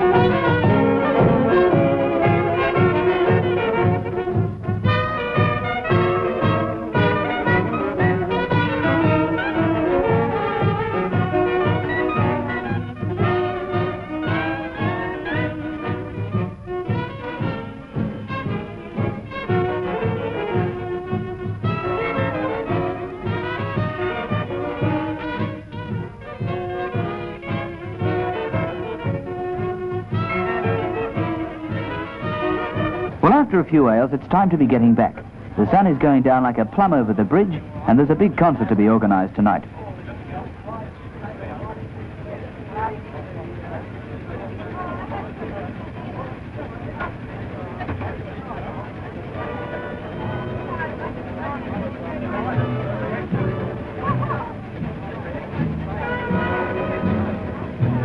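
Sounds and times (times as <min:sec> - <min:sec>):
trombone: 0:00.0 - 0:18.6
jazz band playing: 0:00.0 - 0:39.6, 0:48.0 - 0:58.0
trumpet: 0:00.0 - 0:39.7, 0:49.3 - 0:58.0.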